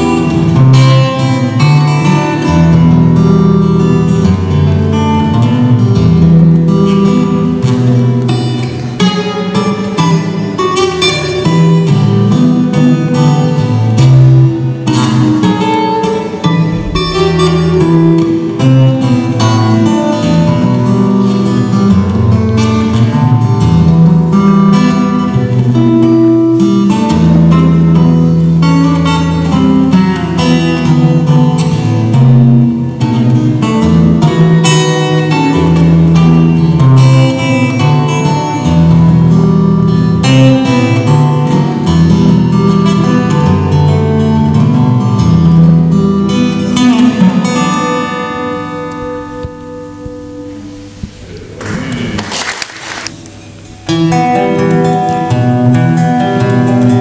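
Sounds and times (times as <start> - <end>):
acoustic guitar playing: 0.0 - 57.0
rustling and scraping: 51.1 - 53.4.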